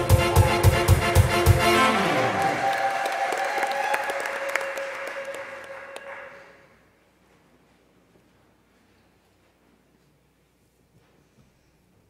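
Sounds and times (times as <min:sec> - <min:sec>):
held musical note: 0:00.0 - 0:02.8
applause: 0:02.1 - 0:06.8.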